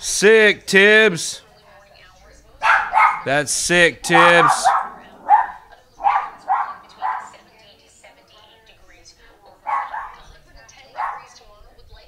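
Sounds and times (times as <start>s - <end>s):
dog barking: 2.6s - 3.3s, 4.0s - 7.5s, 9.6s - 11.4s.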